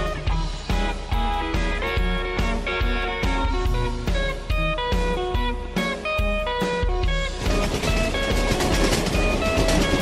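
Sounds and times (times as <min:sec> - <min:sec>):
cartoon train chugging: 0:06.5 - 0:10.0.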